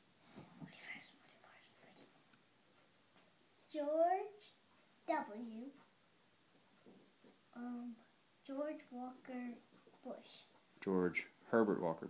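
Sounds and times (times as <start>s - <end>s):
faint whispering: 0.6s - 2.2s.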